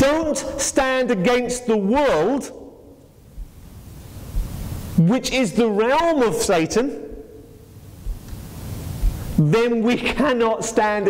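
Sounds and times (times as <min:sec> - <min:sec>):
faint hiss: 0:02.1 - 0:11.0
low room rumble: 0:02.4 - 0:11.0
person speaking: 0:04.3 - 0:07.3.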